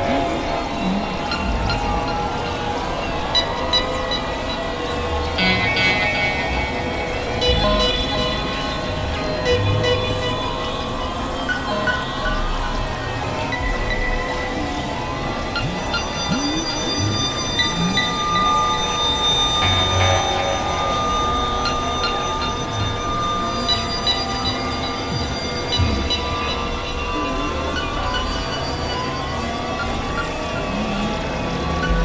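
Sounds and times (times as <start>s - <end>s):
electronic drone music: 0.0s - 32.0s.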